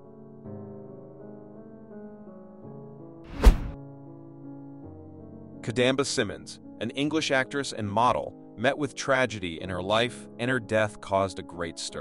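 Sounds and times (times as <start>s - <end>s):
deep thud transition hit: 3.3s - 3.8s.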